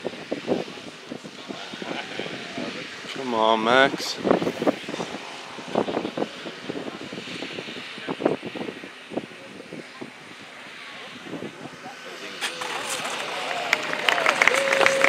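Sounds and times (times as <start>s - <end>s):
model plane propeller hum: 0.0s - 15.0s
voices: 0.0s - 15.0s.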